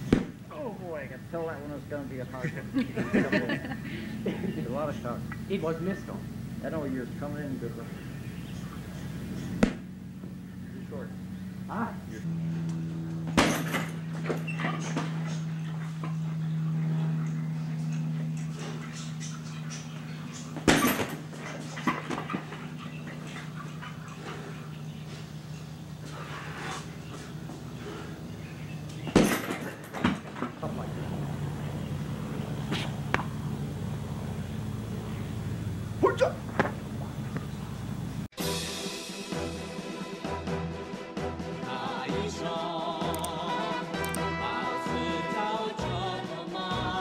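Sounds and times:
punching bag thud: 0:00.0 - 0:00.4, 0:09.6 - 0:09.9, 0:13.3 - 0:14.0, 0:20.6 - 0:21.2, 0:29.1 - 0:30.2
steady low hum: 0:00.0 - 0:38.3
swinging bag knocks and rattles: 0:13.3 - 0:15.2, 0:20.6 - 0:22.6, 0:29.0 - 0:30.6.

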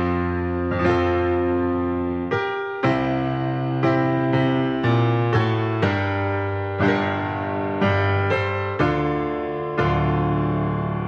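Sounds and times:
slow gentle piano music: 0:00.0 - 0:11.0.

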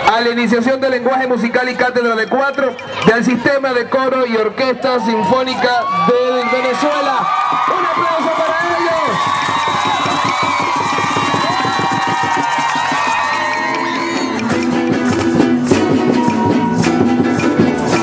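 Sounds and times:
audience applauding and cheering: 0:05.0 - 0:18.0
small guitars strumming chords: 0:13.7 - 0:18.0.

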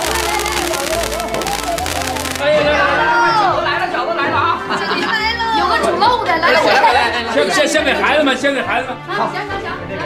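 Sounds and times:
people talking and calling out: 0:00.0 - 0:08.0
background music: 0:00.0 - 0:10.0.

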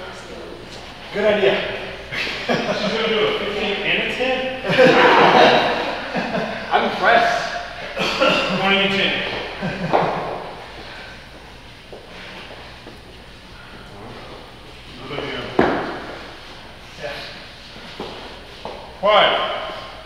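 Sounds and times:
indistinct voices in echoing hall: 0:00.0 - 0:20.0.

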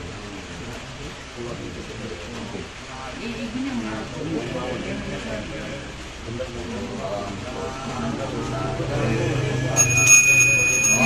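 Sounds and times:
steady background hiss: 0:00.0 - 0:11.0
low voice intoning a prayer: 0:00.1 - 0:09.7.

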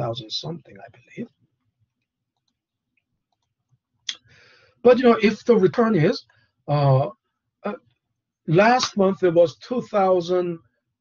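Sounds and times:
person speaking: 0:00.0 - 0:01.3, 0:04.9 - 0:07.1, 0:08.5 - 0:10.6.

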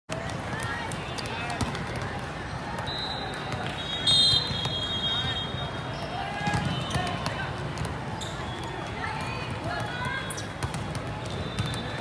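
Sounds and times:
many people talking: 0:00.1 - 0:12.0.

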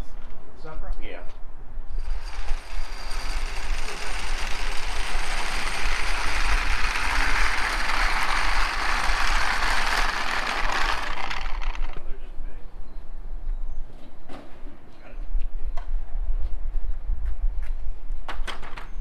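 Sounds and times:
casters rattling on concrete: 0:02.0 - 0:12.2.

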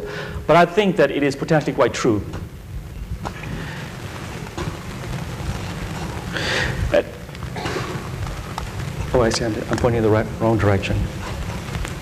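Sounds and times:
faint hiss: 0:00.0 - 0:12.0
low hum: 0:02.1 - 0:12.0.

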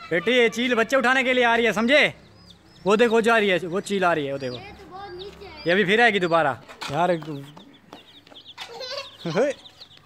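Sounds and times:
baby chicks peeping: 0:00.0 - 0:10.0.

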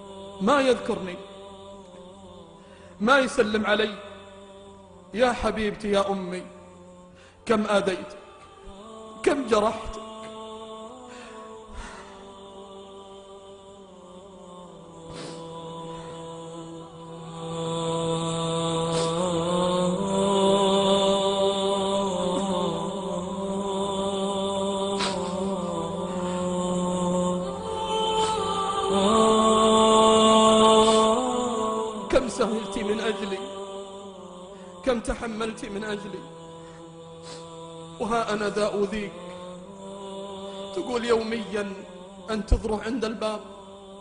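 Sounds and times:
vocal drone chant: 0:00.0 - 0:44.0
voices humming a chord: 0:04.2 - 0:44.0.

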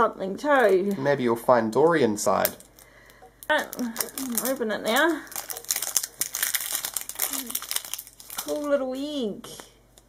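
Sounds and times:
wrapper crinkling and tearing: 0:02.4 - 0:08.8.

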